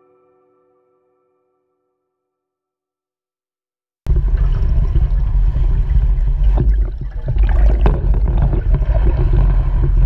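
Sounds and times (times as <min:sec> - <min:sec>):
muffled underwater water churning: 0:04.1 - 0:10.0.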